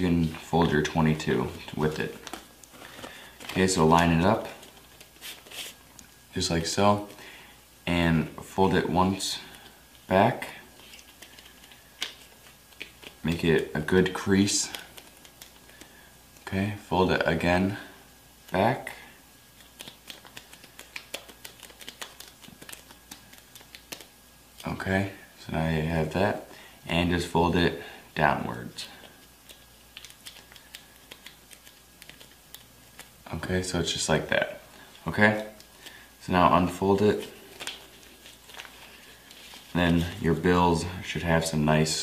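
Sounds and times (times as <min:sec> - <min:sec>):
paper banknotes being folded: 0:00.2 - 0:05.8, 0:10.7 - 0:16.1, 0:19.5 - 0:24.8, 0:28.7 - 0:40.9.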